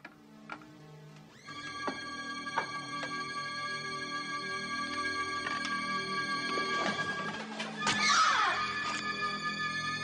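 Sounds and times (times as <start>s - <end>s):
horror film score: 0.0s - 10.0s.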